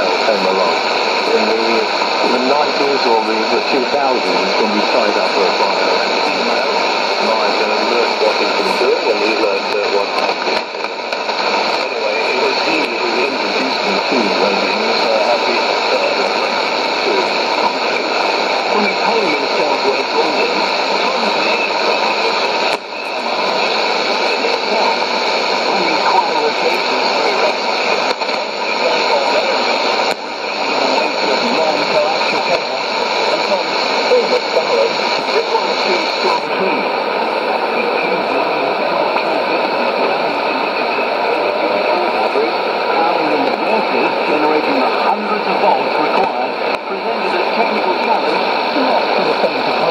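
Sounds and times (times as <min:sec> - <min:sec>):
radio hiss and static: 0:00.0 - 0:49.9
weak radio speech: 0:00.0 - 0:49.9.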